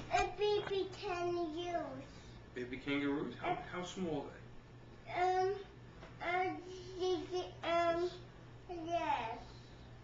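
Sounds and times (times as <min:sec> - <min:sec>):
small boy singing wordlessly: 0:00.1 - 0:02.0.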